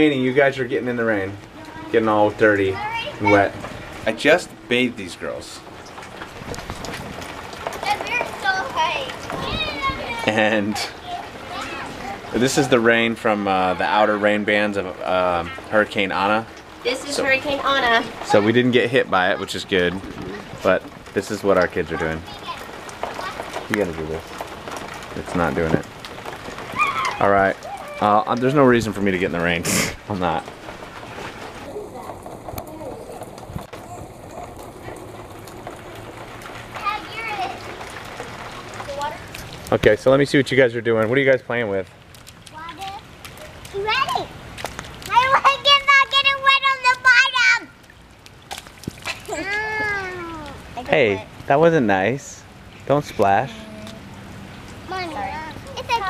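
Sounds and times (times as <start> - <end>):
falling rain: 0.0 - 56.0
faint children's voices: 7.7 - 12.9, 31.5 - 39.4
children shouting and squealing: 7.8 - 12.4, 26.6 - 28.3, 45.0 - 47.8, 49.1 - 50.8.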